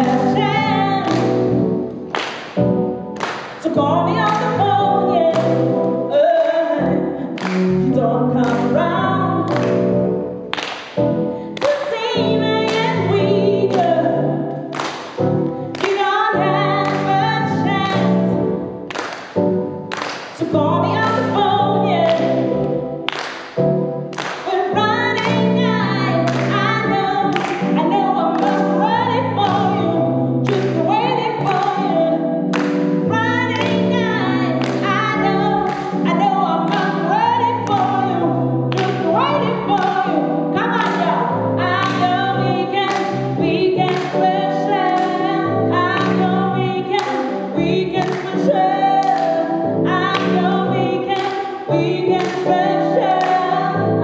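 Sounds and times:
woman singing into microphone: 0.0 - 1.7, 3.6 - 9.8, 11.4 - 18.6, 20.4 - 22.6, 24.2 - 54.0
keyboard chords: 0.0 - 54.0.

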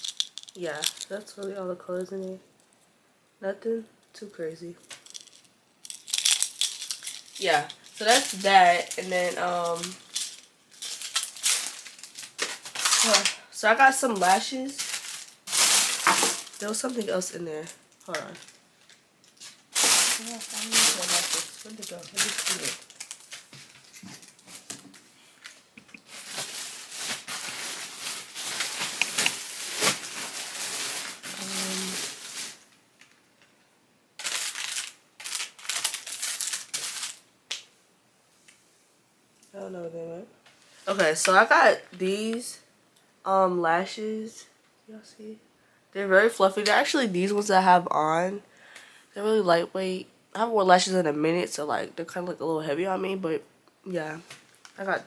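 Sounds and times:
plastic packaging crinkling: 0.0 - 1.5, 4.8 - 33.5, 34.2 - 37.2.

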